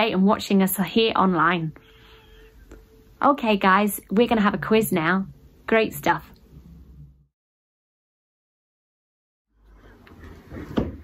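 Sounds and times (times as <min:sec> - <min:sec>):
low room noise: 0:00.0 - 0:07.3.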